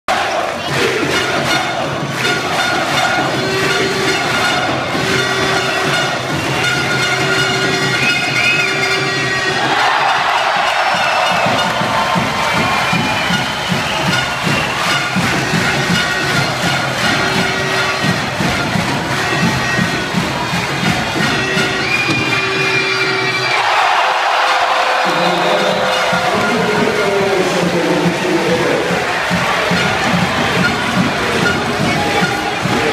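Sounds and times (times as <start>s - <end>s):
crowd cheering and shouting: 0.1s - 32.9s
fast rhythmic beat: 0.1s - 32.9s
sustained horn-like tones: 0.1s - 32.9s.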